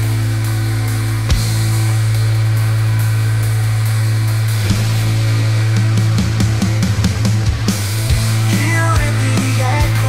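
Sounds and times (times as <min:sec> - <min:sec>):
alternative rock instrumental: 0:00.0 - 0:10.0
drum and bass hits: 0:00.0 - 0:10.0.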